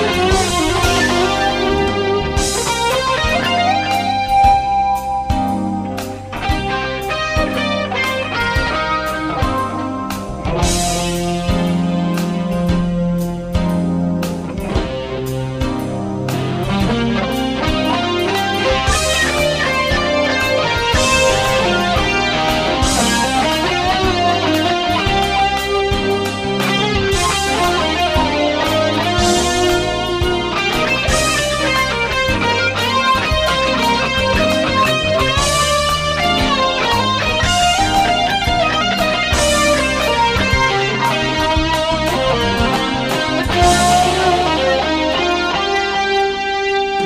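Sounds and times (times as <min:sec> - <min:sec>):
drum beat: 0:00.0 - 0:04.7, 0:16.6 - 0:44.8
bass line: 0:00.0 - 0:47.0
electric guitar lead notes: 0:00.0 - 0:47.0.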